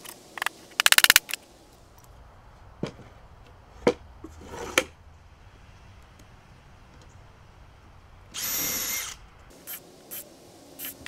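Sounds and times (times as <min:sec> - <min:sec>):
fast run of clicks: 0:00.0 - 0:01.4
wood scraping: 0:02.7 - 0:05.0.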